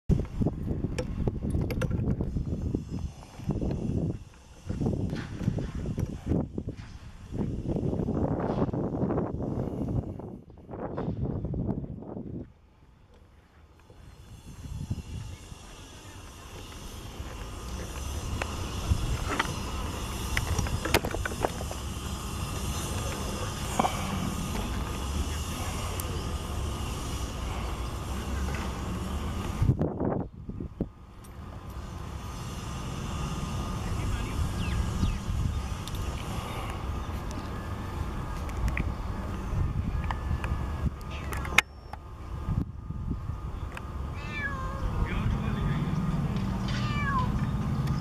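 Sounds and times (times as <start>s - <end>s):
steady low rumble: 0.1s - 48.0s.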